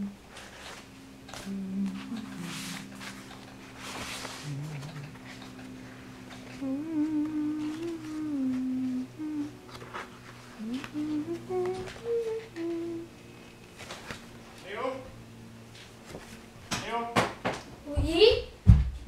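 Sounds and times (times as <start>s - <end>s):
person humming a tune: 0.0s - 13.5s
low drone: 1.3s - 13.8s.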